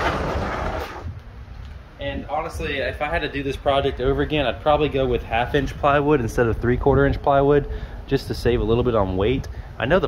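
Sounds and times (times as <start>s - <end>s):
heavy bed slide rolling: 0.0s - 1.1s.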